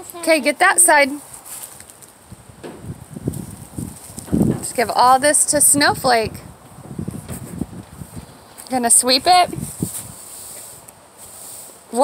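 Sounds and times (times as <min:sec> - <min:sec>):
wind buffeting microphone: 0:02.1 - 0:10.9.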